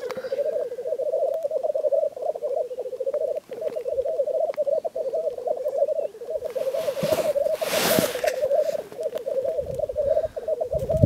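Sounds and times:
grouse bubbling cooing song: 0.0s - 11.0s.

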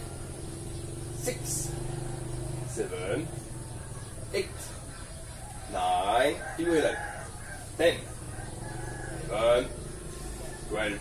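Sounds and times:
rooster crowing: 0.0s - 4.2s, 4.9s - 11.0s.

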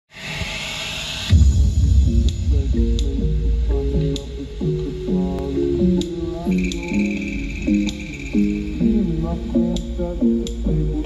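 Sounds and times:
bass-heavy pop remix on speaker: 1.3s - 11.0s.

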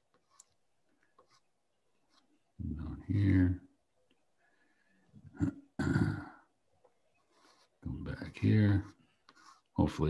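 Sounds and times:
man clearing his throat: 5.3s - 6.4s.

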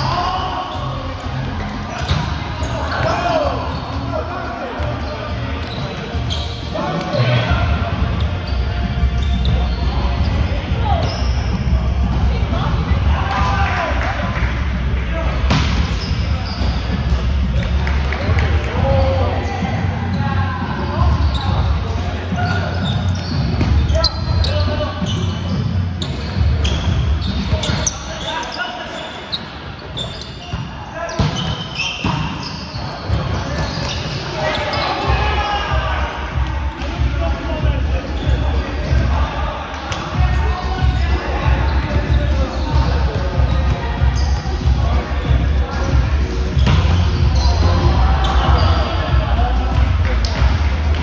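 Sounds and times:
players calling out: 0.0s - 51.0s.

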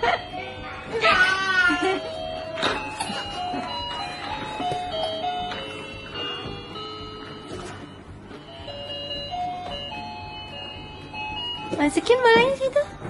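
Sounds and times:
tinkly electronic beeping melody: 1.7s - 12.8s.

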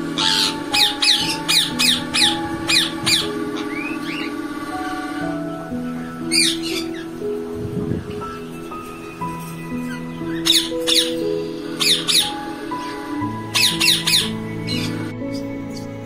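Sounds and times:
background music of sustained notes: 0.0s - 16.0s
parakeets squawking: 0.0s - 16.0s.

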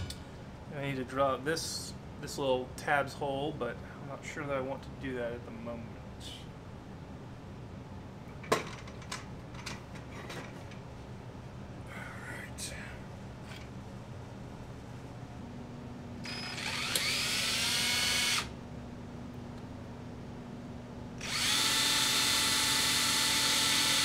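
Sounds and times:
cordless drill spinning: 16.2s - 18.5s, 21.2s - 24.0s.

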